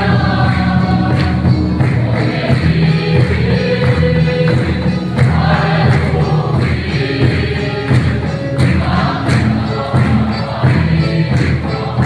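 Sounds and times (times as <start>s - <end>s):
congregation singing a hymn: 0.0s - 12.0s
steady drum beat: 0.0s - 12.0s.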